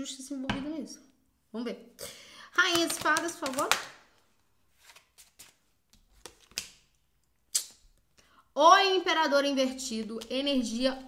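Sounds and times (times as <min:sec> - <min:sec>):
cards being shuffled: 0:02.7 - 0:04.0, 0:04.7 - 0:07.0.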